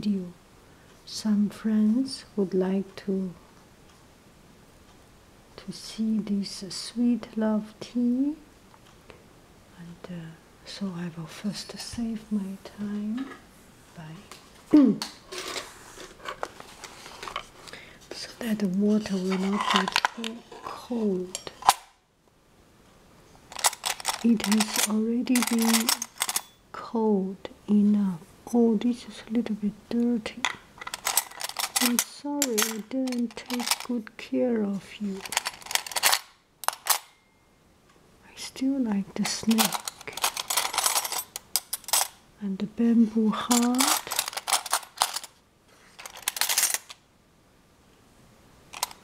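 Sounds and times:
metal spoons clinking: 23.5s - 26.6s, 30.8s - 33.9s, 39.4s - 42.2s.

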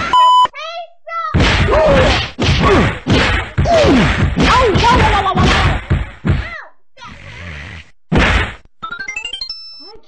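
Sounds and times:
loud cartoon whack: 1.3s - 6.6s, 8.1s - 8.7s.

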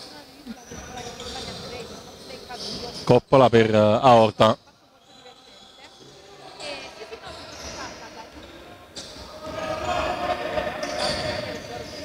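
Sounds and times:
players calling out: 6.4s - 12.0s.

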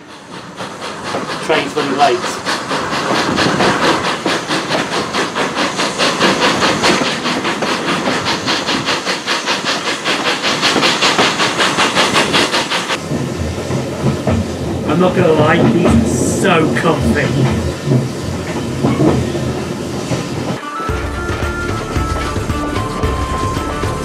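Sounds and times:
steam locomotive exhaust beats: 0.0s - 24.0s
train coach running rumble: 0.0s - 24.0s.

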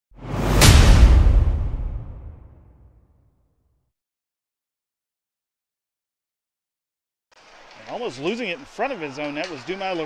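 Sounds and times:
whoosh with deep boom: 0.2s - 3.0s.

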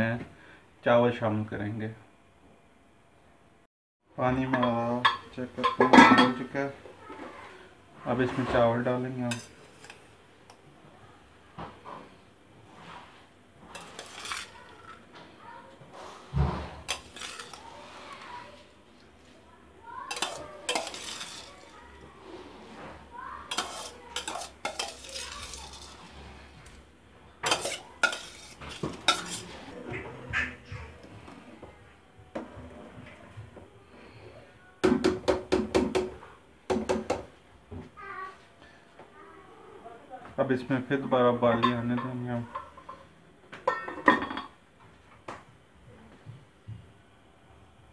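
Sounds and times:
stirring in a pot: 7.1s - 10.7s, 11.8s - 31.4s
metal spoon scraping steel plate: 9.3s - 10.0s, 13.7s - 14.8s, 16.8s - 18.3s, 20.1s - 22.7s, 23.5s - 26.5s, 27.4s - 29.8s.

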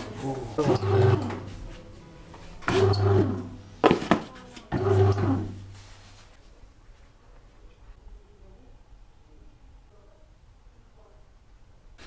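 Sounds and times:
bread maker motor running: 0.0s - 1.6s, 2.6s - 5.8s.

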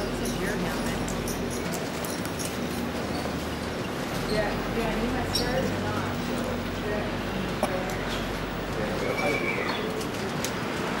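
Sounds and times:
bird calling: 8.9s - 10.0s.

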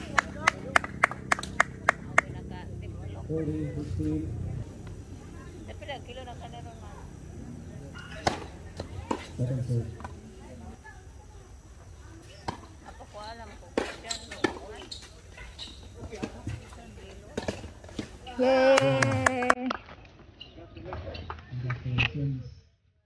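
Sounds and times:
tennis ball struck and bouncing: 8.0s - 9.4s, 13.7s - 16.8s, 17.4s - 18.2s.

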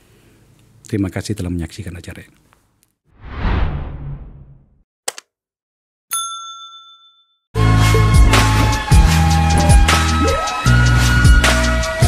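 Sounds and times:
notification bell ding: 6.1s - 7.4s.

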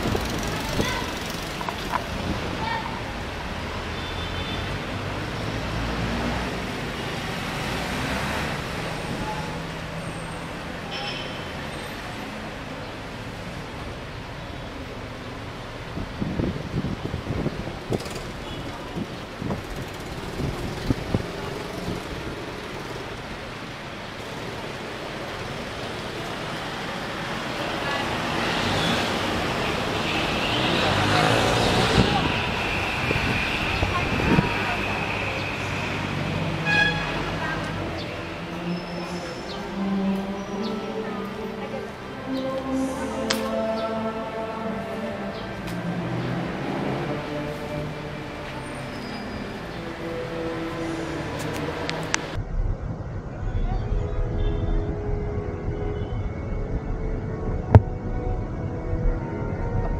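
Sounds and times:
chatter of passers-by: 0.0s - 59.9s
city traffic: 0.0s - 59.9s.

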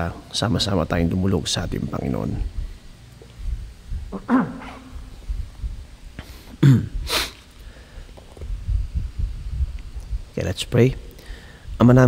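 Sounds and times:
man coughing: 4.2s - 5.0s, 6.5s - 7.3s.

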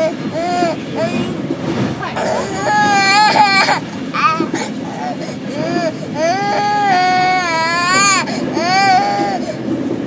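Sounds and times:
toddler crying: 0.0s - 1.4s, 2.2s - 9.6s.

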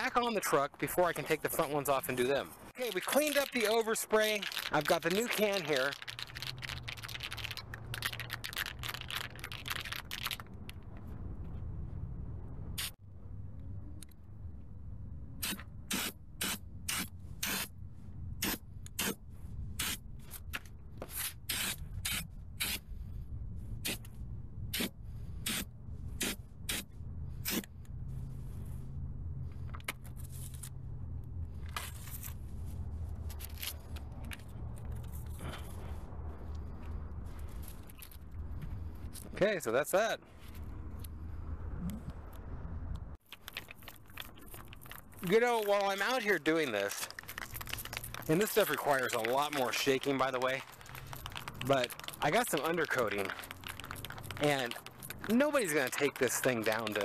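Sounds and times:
spray paint can hissing: 12.8s - 13.0s, 15.4s - 17.7s.

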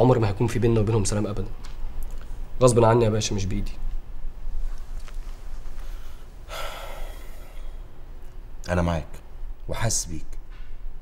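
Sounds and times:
low room hum: 0.0s - 11.0s
man exhaling sigh: 6.5s - 7.8s.

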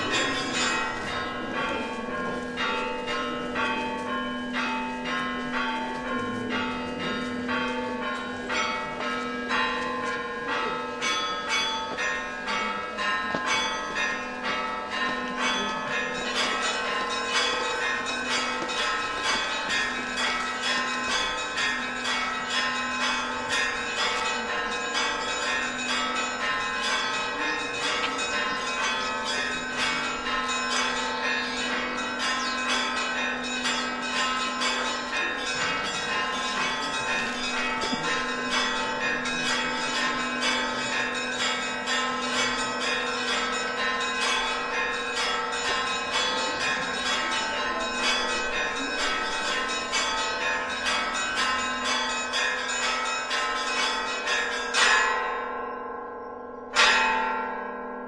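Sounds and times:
church bells ringing: 0.0s - 58.0s.

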